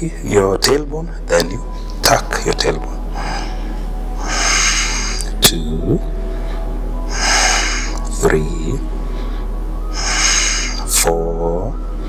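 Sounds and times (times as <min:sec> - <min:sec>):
person breathing noisily: 0:03.0 - 0:05.4, 0:06.1 - 0:08.1, 0:08.8 - 0:10.9.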